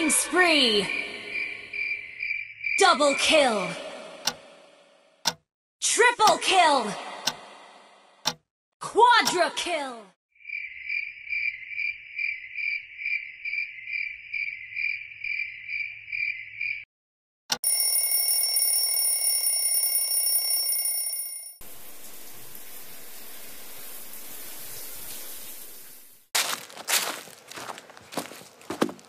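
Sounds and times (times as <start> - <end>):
click: 4.2 - 4.4, 5.2 - 5.4, 8.2 - 8.4
alarm clock ringing: 17.5 - 21.6.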